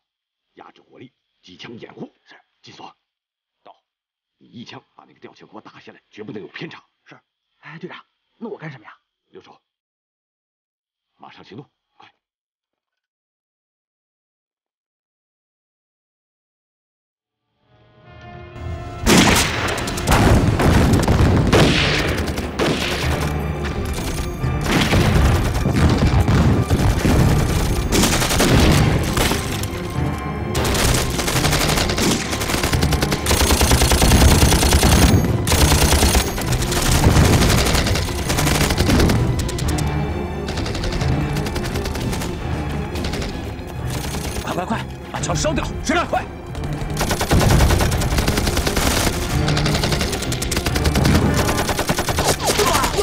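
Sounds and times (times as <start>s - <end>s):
dramatic background music: 17.7s - 53.0s
rifle and machine-gun fire: 19.0s - 44.6s, 46.5s - 53.0s
booms: 19.1s - 23.2s, 24.6s - 29.4s.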